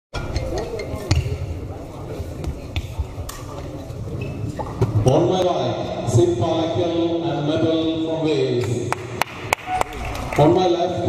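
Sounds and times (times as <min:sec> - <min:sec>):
murmur of voices: 0:00.2 - 0:11.0.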